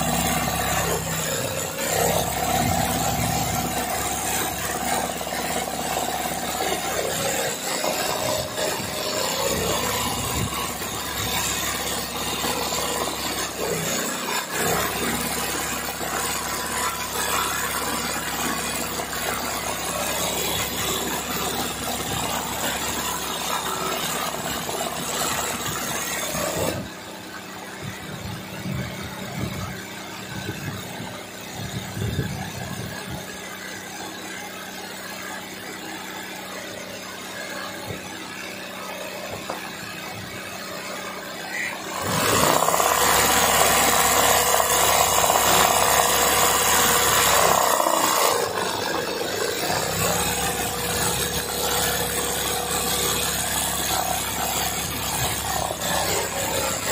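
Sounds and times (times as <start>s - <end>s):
sewing machine running: 0.0s - 56.9s.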